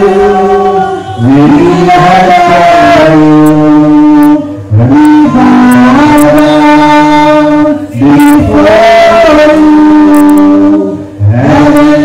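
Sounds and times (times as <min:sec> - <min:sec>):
man singing into microphone: 0:00.0 - 0:12.0.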